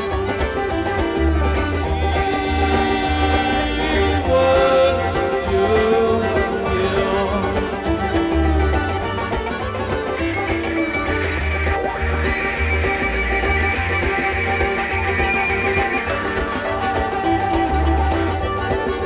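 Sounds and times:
bowed fiddle melody: 0.0s - 19.0s
plucked strings: 0.0s - 19.0s.

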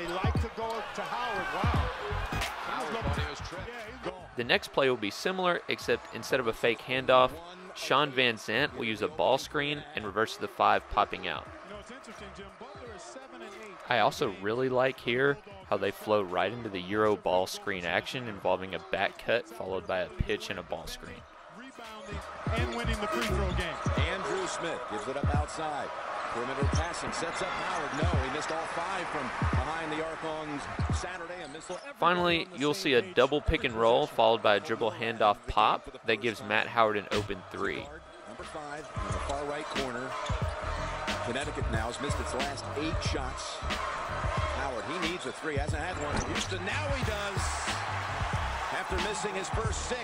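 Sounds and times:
commentator speaking: 0.0s - 21.2s, 21.8s - 40.3s, 41.1s - 43.6s, 44.4s - 47.9s, 48.6s - 50.0s
arena crowd noise: 0.0s - 50.0s
voices: 0.0s - 50.0s.

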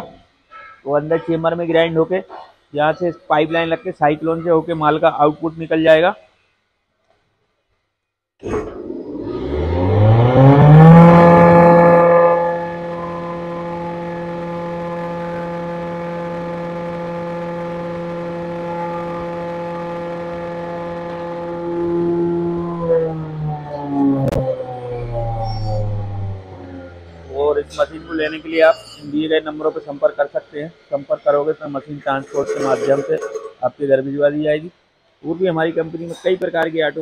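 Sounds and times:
grinding mill motor whine: 8.6s - 29.6s.

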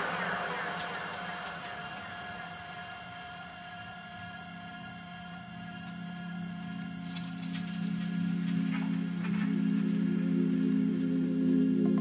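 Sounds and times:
sustained synth pad chord: 0.0s - 12.0s.

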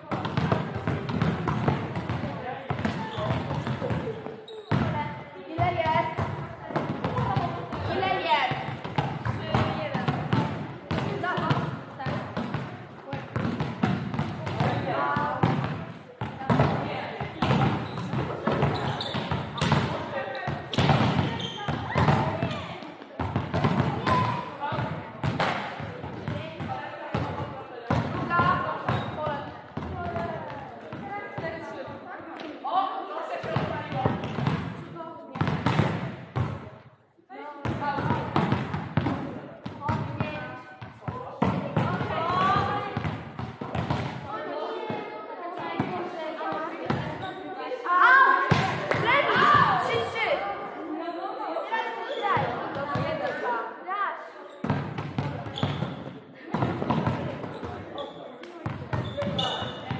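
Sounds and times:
volleyballs struck and bouncing: 0.0s - 32.6s, 33.3s - 36.9s, 37.6s - 47.2s, 48.4s - 49.9s, 54.6s - 59.9s
players calling and chattering: 0.0s - 59.9s.

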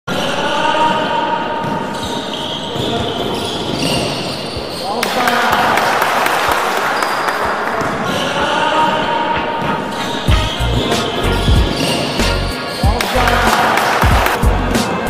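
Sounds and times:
echoing gym voices: 0.1s - 15.0s.

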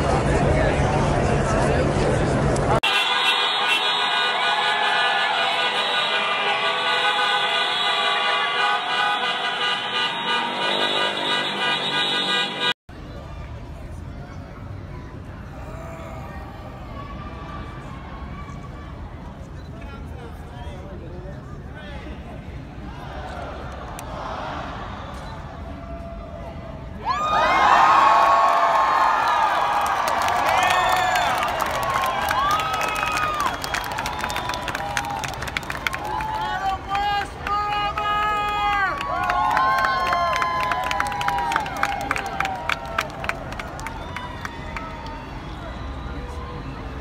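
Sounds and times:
crowd cheering and shouting: 2.8s - 6.6s, 22.9s - 47.0s.

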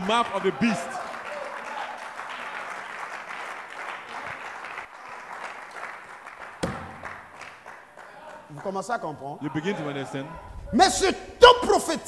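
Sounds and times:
congregation applauding: 0.0s - 9.3s
sharp thump: 6.6s - 7.2s.

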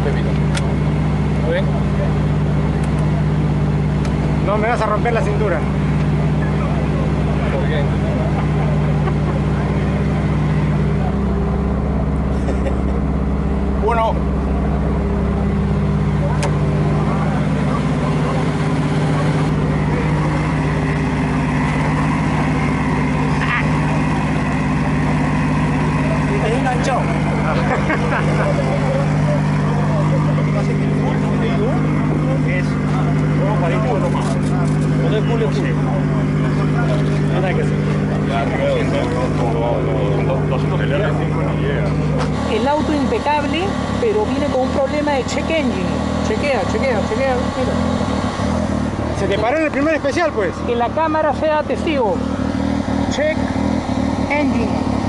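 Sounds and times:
people talking: 0.0s - 48.1s, 48.9s - 52.4s, 53.0s - 53.6s, 54.2s - 55.0s
car engine idling: 0.0s - 55.0s.

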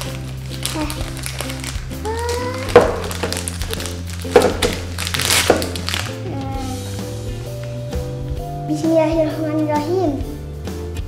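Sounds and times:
plastic wrapper crinkling and tearing: 0.0s - 6.4s
background music: 0.0s - 11.0s.

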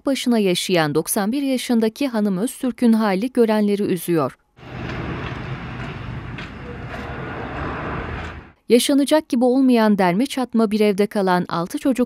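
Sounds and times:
low hum: 4.6s - 8.6s
road traffic rushing: 4.6s - 8.6s.

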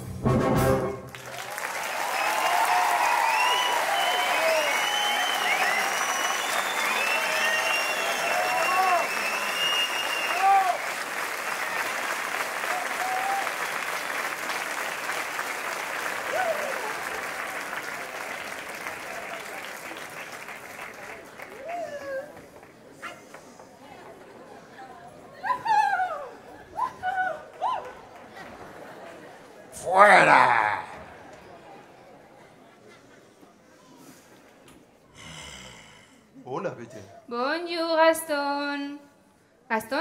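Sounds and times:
audience applauding: 1.1s - 23.8s
cheers and shouts: 1.4s - 12.0s, 12.6s - 13.7s, 16.2s - 17.2s.

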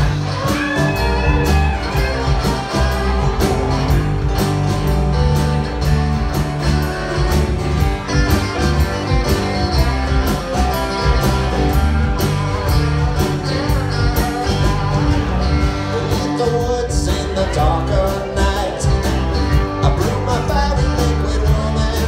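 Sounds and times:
bass: 0.0s - 22.0s
drums steady beat: 0.0s - 22.0s
electric guitar: 0.0s - 22.0s.

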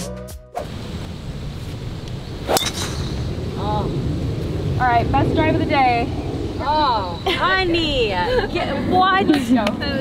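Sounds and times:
background music: 0.0s - 0.6s
low outdoor rumble: 0.7s - 10.0s
golf driver striking ball: 2.5s - 3.3s.

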